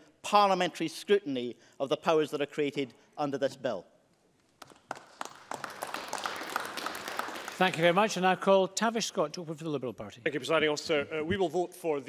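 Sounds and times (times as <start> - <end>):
audience applause: 4.6 - 8.2.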